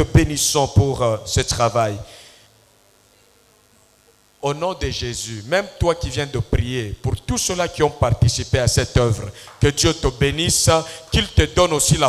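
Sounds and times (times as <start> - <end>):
faint low hum: 0.0 - 12.0
voice echo: 0.3 - 2.5, 4.4 - 12.0.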